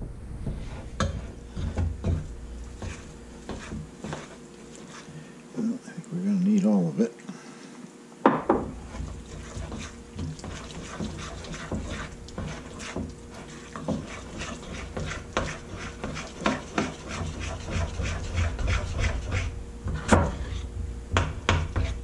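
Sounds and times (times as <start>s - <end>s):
spoon scraping glaze in bowl: 0.5s - 5.2s, 8.8s - 19.6s.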